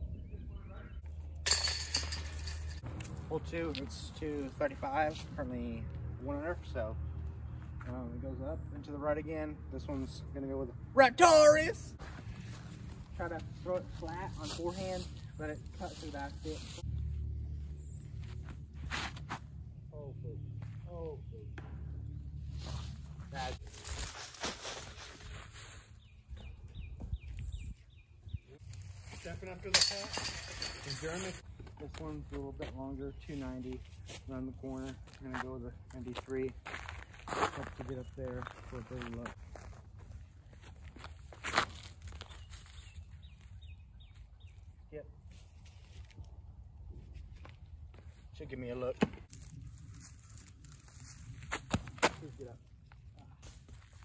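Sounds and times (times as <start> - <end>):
bird chirps: 0.0 - 1.4
disc hitting metal chains: 1.4 - 2.8, 29.6 - 31.4
man exclaiming: 11.0 - 11.9
dry leaves rustling: 22.4 - 26.3, 28.6 - 31.4, 49.3 - 51.6.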